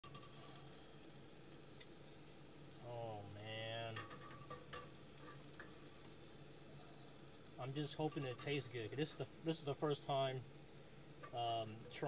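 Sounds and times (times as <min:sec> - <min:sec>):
shrimp sizzling in a skillet: 0:00.0 - 0:12.0.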